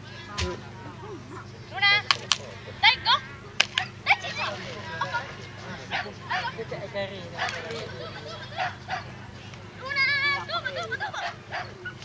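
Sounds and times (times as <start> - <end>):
sharp cracks: 2.0 - 2.5, 3.6 - 3.9.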